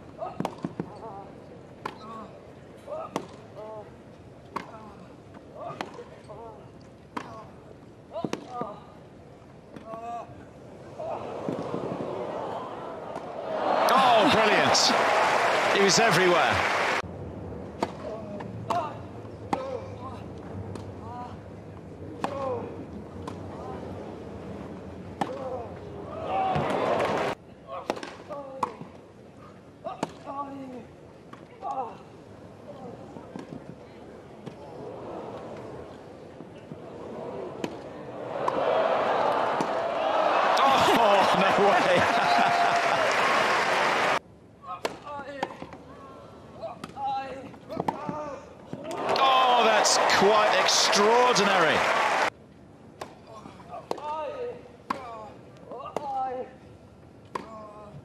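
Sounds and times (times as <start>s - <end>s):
crowd murmur: 10.9s - 17.0s, 40.5s - 43.0s, 48.9s - 52.3s
crowd cheering and applauding: 12.0s - 17.0s, 26.5s - 27.4s, 38.2s - 44.2s, 48.9s - 52.3s.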